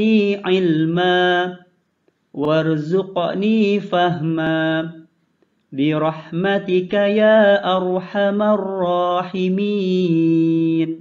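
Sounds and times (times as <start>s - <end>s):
person chanting a prayer: 5.8s - 11.0s.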